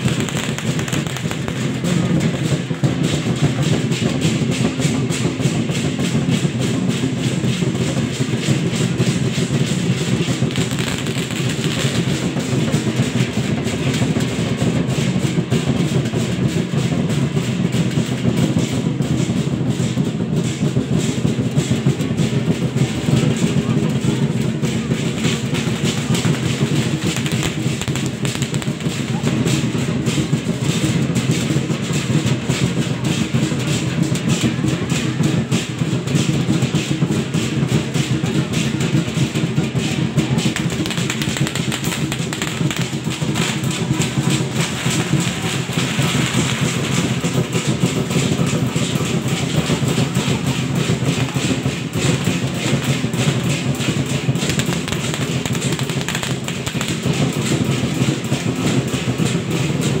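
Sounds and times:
large drum fast rhythm: 0:00.0 - 1:00.0
other percussion: 0:00.0 - 1:00.0.

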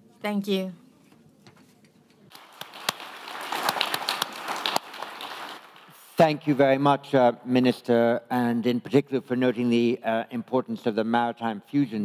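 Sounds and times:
audience applauding: 0:02.3 - 0:06.0.

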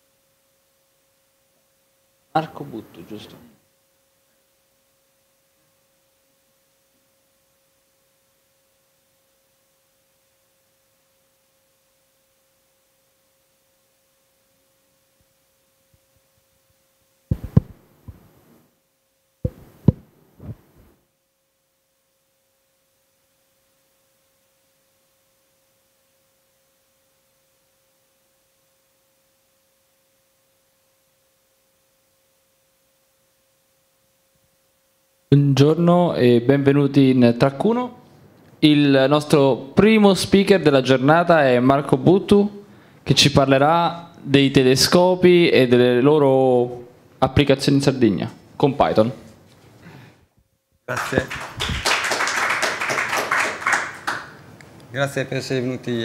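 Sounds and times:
faint electrical tone: 0:00.0 - 0:51.8.

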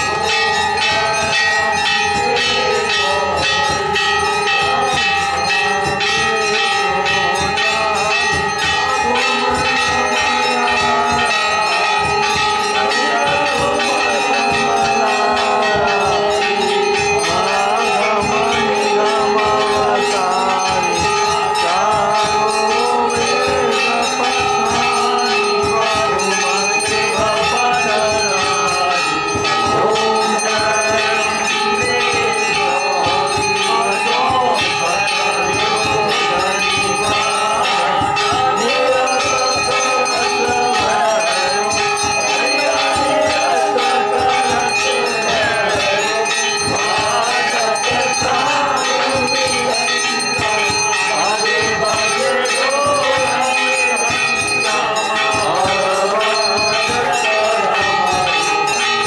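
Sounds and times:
bells ringing rapidly: 0:00.0 - 0:59.0
faint voices: 0:00.0 - 0:59.0.

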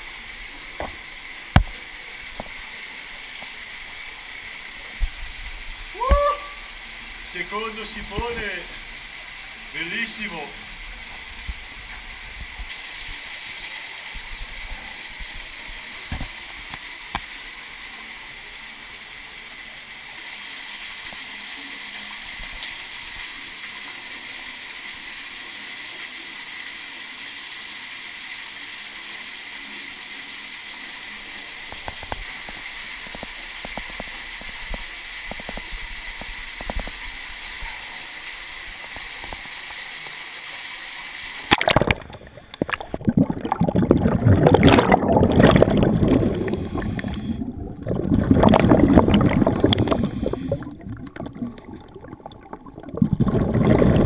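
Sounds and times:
faint underwater hiss: 0:00.0 - 0:54.0
loud gurgling bubbles: 0:41.5 - 0:54.0.

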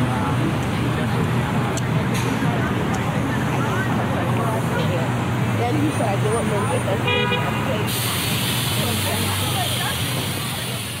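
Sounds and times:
city street traffic: 0:00.0 - 0:11.0
passers-by talking: 0:00.0 - 0:11.0
vehicle horn toot: 0:07.0 - 0:07.7.

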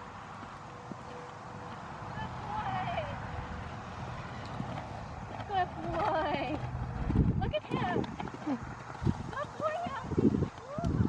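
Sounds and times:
horse hoofbeats on sand: 0:00.0 - 0:11.0.

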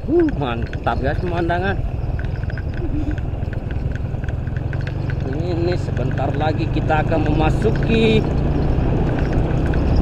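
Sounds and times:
small motorbike engine running: 0:00.0 - 0:10.0
ticking rattle on gravel: 0:00.0 - 0:10.0.

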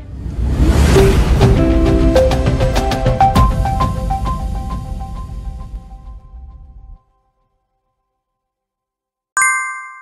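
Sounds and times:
bright ding sound effect: 0:09.4 - 0:10.0.

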